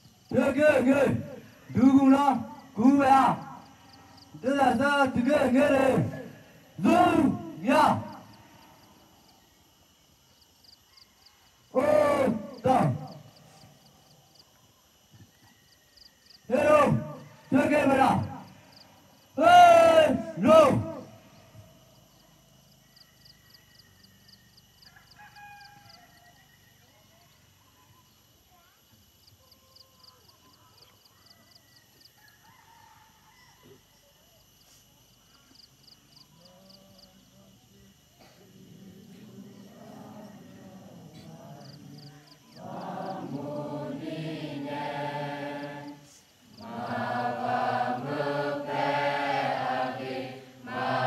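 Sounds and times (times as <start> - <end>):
person shouting commands: 4.4 - 8.3, 11.8 - 13.2, 16.5 - 18.4, 19.4 - 21.1.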